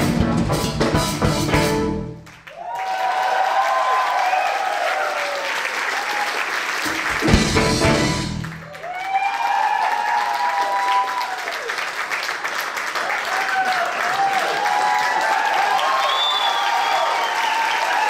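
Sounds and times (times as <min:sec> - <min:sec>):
audience applauding and cheering: 0:02.2 - 0:18.0
whoops: 0:02.5 - 0:06.4, 0:08.7 - 0:11.7, 0:13.2 - 0:18.0.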